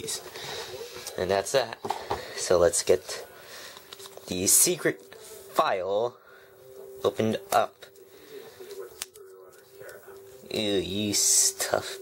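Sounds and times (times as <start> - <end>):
hands handling cardboard card: 8.9 - 10.3.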